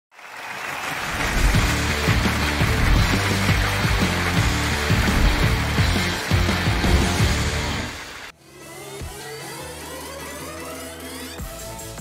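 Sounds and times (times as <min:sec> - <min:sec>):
game show theme music: 0:01.2 - 0:08.3
steady bass beat: 0:01.3 - 0:08.0.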